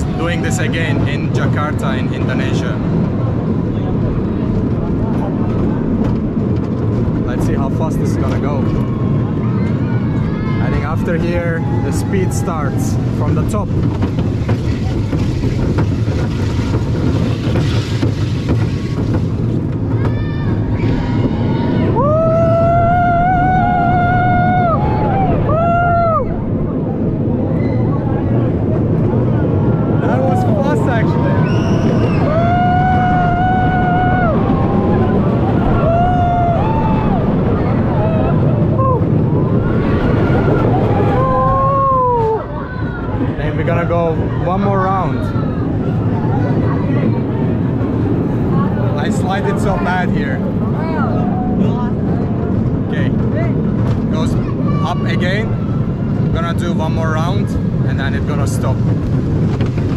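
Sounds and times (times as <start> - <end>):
roller coaster rumbling on track: 0.0 - 59.9
riders whooping: 19.8 - 43.4.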